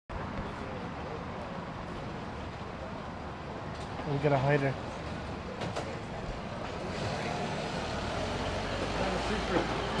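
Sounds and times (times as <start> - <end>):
street noise: 0.1 - 10.0.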